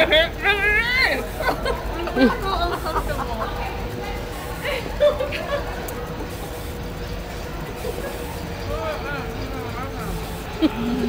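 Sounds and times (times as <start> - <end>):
constant hum: 0.0 - 11.0
street background rumble: 0.0 - 11.0.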